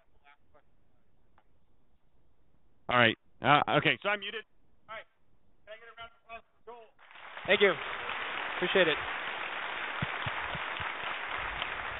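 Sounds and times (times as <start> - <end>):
audience applause: 7.0 - 11.9.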